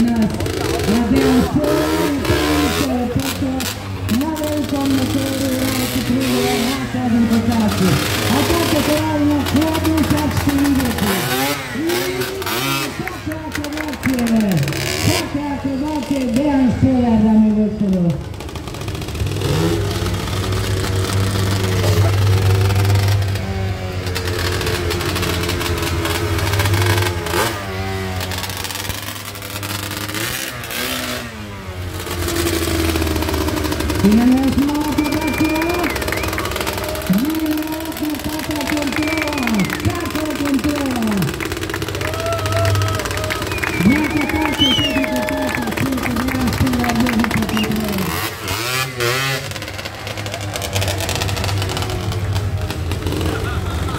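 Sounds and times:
quad bike engine revving: 0:00.0 - 0:53.9.

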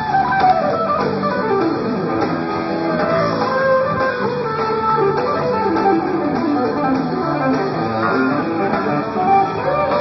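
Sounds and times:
bass and drums: 0:00.0 - 0:10.0
electric guitar lead: 0:00.0 - 0:10.0.

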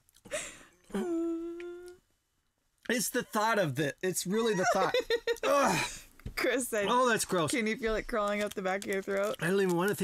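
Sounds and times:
person humming: 0:00.9 - 0:02.0.

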